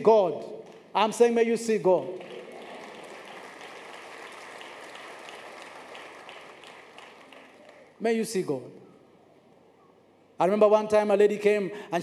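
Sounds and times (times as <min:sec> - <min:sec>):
congregation applauding: 0:00.6 - 0:01.1, 0:01.9 - 0:08.0.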